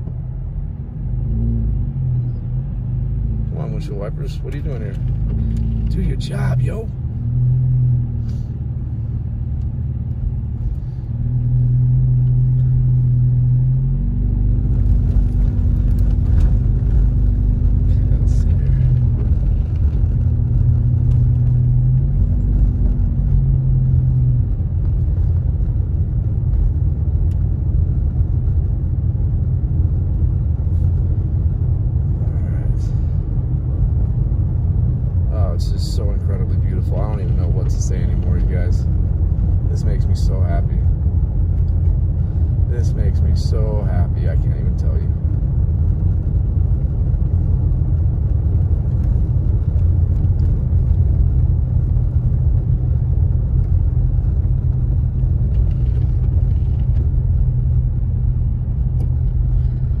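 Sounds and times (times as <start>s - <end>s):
car driving on snow interior: 0.0s - 60.0s.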